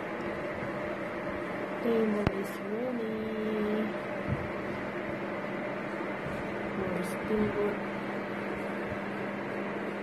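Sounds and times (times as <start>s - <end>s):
induction cooker whirring hum: 0.0s - 10.0s.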